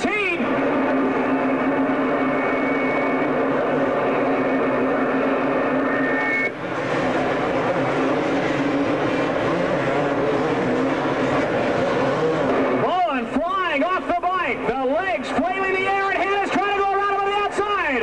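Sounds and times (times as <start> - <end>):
motocross bike engines droning: 0.0 - 18.0.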